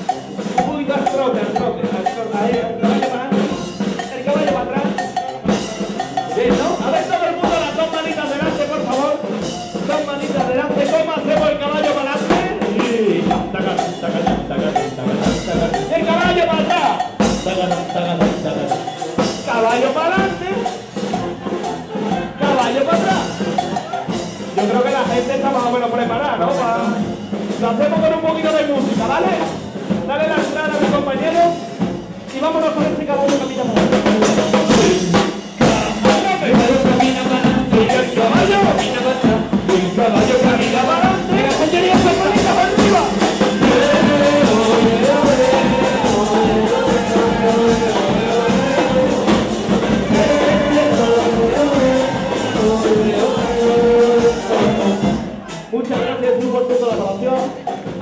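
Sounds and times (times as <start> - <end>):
brass band playing: 0.0 - 58.0
drum beats: 0.0 - 58.0.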